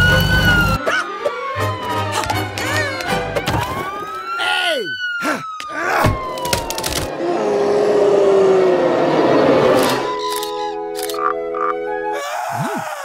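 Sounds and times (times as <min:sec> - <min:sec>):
sharp clicks: 0:09.8 - 0:11.3.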